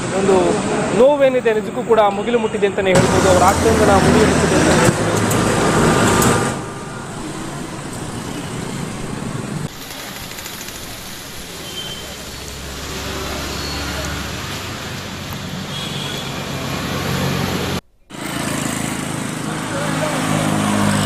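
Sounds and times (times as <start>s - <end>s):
voices: 0.0s - 5.8s, 19.3s - 20.8s
road traffic hum: 0.0s - 21.0s.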